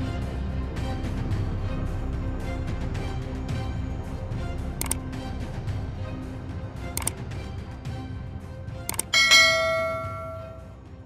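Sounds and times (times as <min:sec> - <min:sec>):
faint background music: 0:00.0 - 0:11.0
bell chime ringing: 0:09.1 - 0:10.7.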